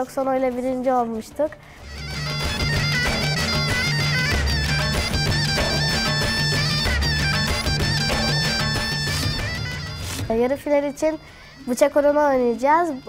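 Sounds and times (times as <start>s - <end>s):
fast dance music: 1.9s - 10.8s.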